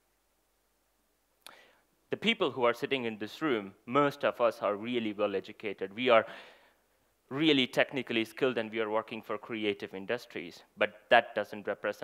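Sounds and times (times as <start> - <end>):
breath into headset microphone: 1.5 - 1.9, 6.3 - 7.2.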